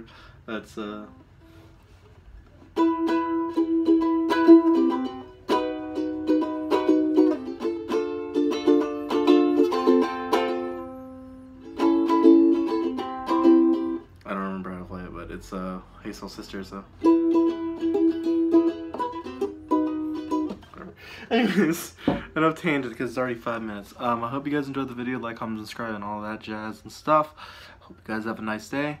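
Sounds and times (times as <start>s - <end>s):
ukulele strumming chords: 2.6s - 15.1s, 16.2s - 25.2s.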